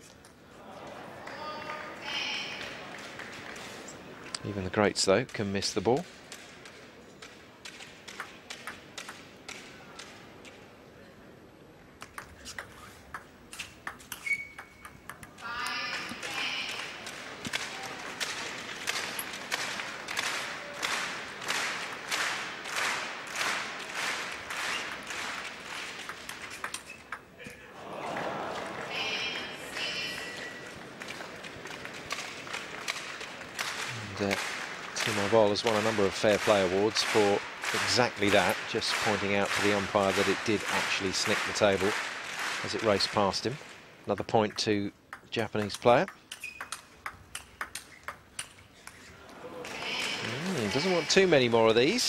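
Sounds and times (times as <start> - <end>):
crowd murmur: 0.4 - 4.6, 27.4 - 38.5, 49.0 - 51.4
table tennis ball clicking: 6.3 - 10.2, 12.0 - 16.8, 26.0 - 27.3, 44.1 - 49.0.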